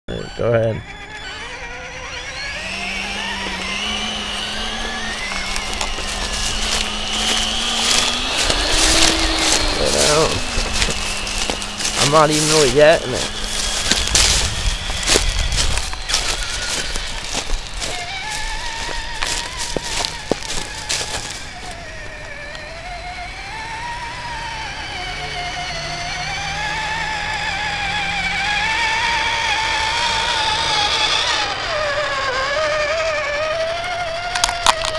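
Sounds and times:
toy truck motor whine: 0:00.1 - 0:34.9
tyres crackling over dry leaves: 0:00.1 - 0:34.9.

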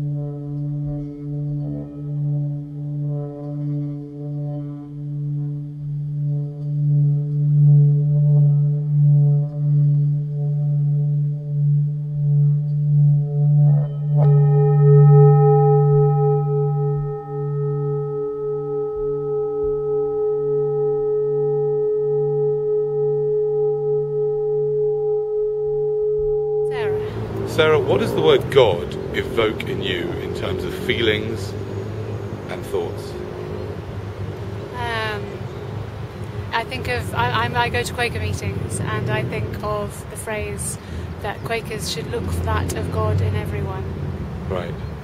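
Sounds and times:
meditative drone music: 0:00.0 - 0:45.0
struck bell-like tone: 0:11.6 - 0:33.8.

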